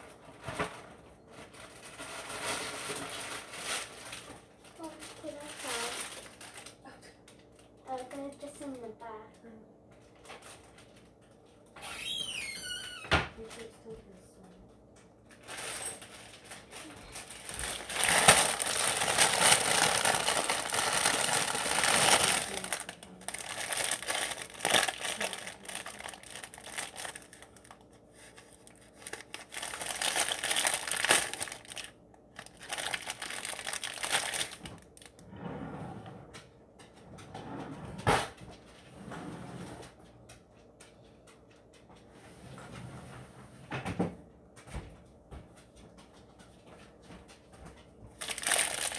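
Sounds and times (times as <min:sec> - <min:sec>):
plastic bag crinkling: 0:00.0 - 0:06.9, 0:10.2 - 0:11.2, 0:15.3 - 0:35.2, 0:48.1 - 0:48.9.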